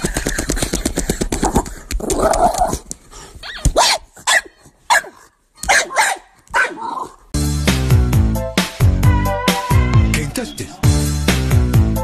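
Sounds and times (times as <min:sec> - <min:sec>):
dog barking: 0:03.8 - 0:07.2
music with a steady beat: 0:07.4 - 0:12.0.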